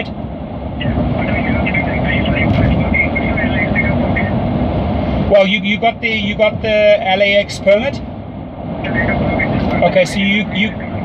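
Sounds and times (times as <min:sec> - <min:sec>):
rumbling vehicle noise: 0:00.0 - 0:11.0.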